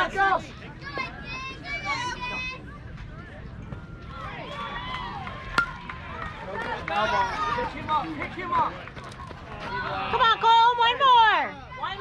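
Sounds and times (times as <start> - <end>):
spectators calling and shouting: 0.0 - 12.0
baseball bat cracking on ball: 5.5 - 6.0.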